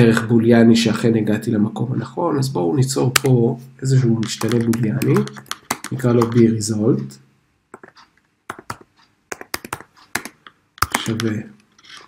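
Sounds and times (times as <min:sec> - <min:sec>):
computer keyboard typing: 0:04.3 - 0:06.5, 0:07.8 - 0:11.4.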